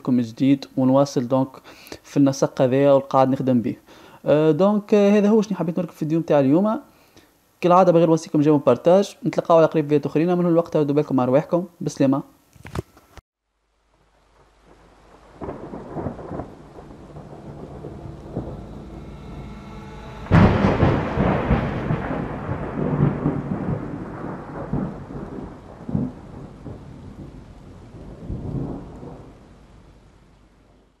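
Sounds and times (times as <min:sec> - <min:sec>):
rain: 0:01.6 - 0:02.1, 0:13.4 - 0:31.0
rumbling thunder: 0:14.6 - 0:31.0
loud thunderclap: 0:14.8 - 0:29.9.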